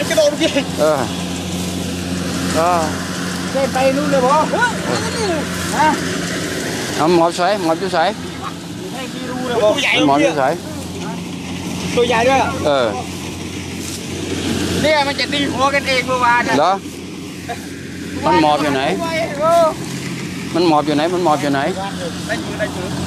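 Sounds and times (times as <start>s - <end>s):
engine idling: 0.0s - 23.0s
voices talking: 0.0s - 23.0s.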